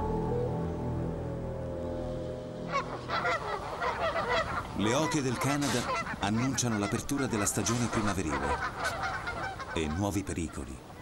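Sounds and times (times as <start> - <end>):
geese honking: 2.6 - 10.8.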